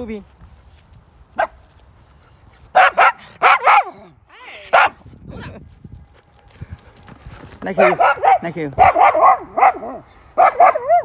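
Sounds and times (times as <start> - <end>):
dog barking: 2.7 - 4.0, 4.7 - 5.0, 7.8 - 11.0.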